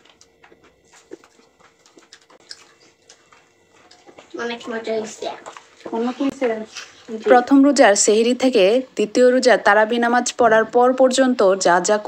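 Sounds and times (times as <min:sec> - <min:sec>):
soft chewing: 0:00.0 - 0:07.3
thin steady hum: 0:00.0 - 0:12.0.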